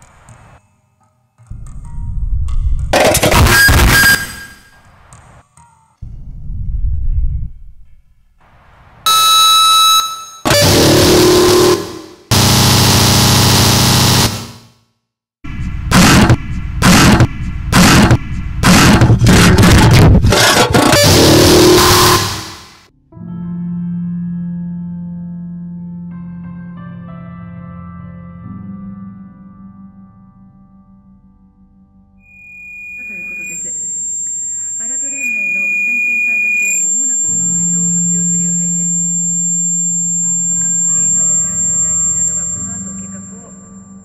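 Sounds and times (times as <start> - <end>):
distorted noise blasts: 1.5 - 5.2, 10.5 - 14.7, 15.5 - 22.9, 32.8 - 44.0.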